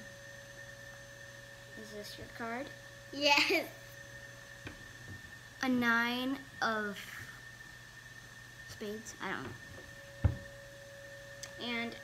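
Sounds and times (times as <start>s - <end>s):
steady electrical hum: 0.0s - 12.0s
child's voice: 1.8s - 3.8s, 5.6s - 7.3s, 11.6s - 12.0s.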